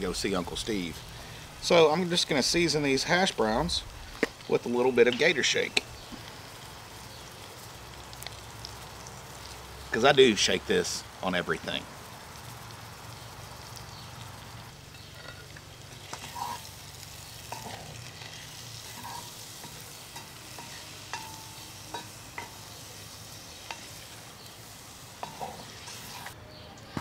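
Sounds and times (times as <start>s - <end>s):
potatoes sizzling in grease: 0.0s - 26.4s
wooden spoon scraping iron pot: 14.9s - 16.8s, 17.5s - 22.6s.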